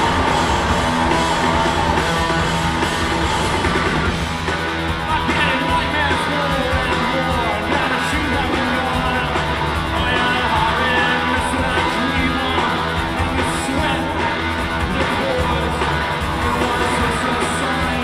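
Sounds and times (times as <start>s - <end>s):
drums: 0.0s - 18.0s
loud electric guitars: 0.0s - 18.0s
person singing lead vocal: 5.0s - 18.0s.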